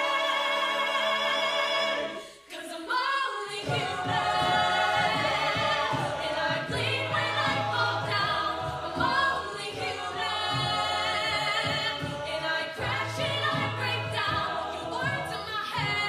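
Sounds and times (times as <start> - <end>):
a cappella harmony singing: 0.0 - 16.0
vocal percussion: 0.0 - 16.0
low sung bass line: 3.7 - 16.0.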